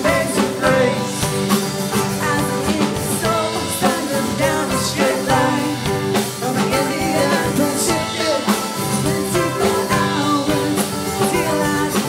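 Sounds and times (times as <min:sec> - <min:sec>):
drum kit: 0:00.0 - 0:12.0
woman singing lead: 0:00.0 - 0:12.0.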